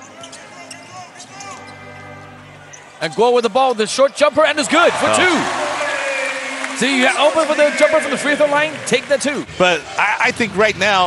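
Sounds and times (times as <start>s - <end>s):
crowd noise in a hall: 0.0s - 11.0s.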